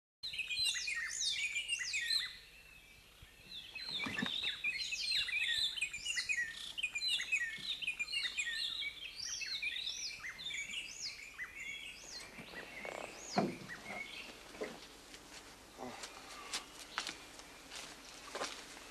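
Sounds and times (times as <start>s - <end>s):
forest birds chirping: 0.2s - 18.9s.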